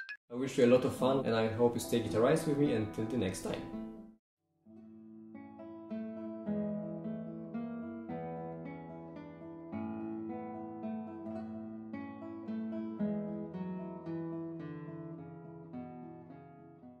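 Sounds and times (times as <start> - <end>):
classical guitar melody: 4.7 - 17.0.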